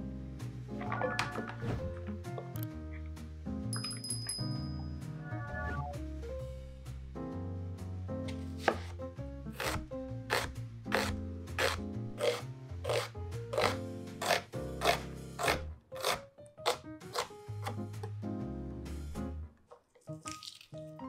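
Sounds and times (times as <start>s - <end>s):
background music: 0.0s - 21.0s
knife slicing onion on board: 8.6s - 18.1s.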